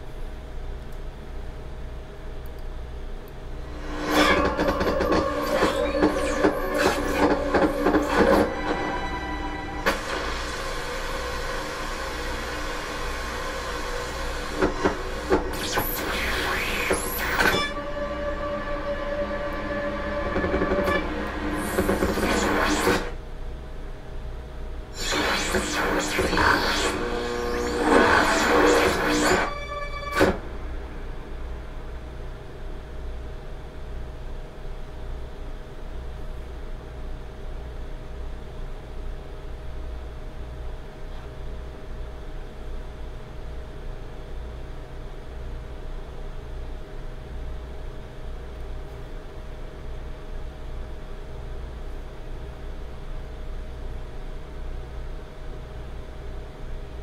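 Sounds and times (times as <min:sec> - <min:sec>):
low hum: 0:00.0 - 0:35.3
electroacoustic music over loudspeakers: 0:03.8 - 0:14.0.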